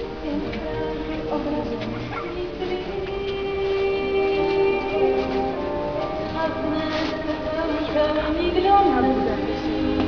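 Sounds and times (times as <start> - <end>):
woman singing with accompaniment: 0.0 - 10.0.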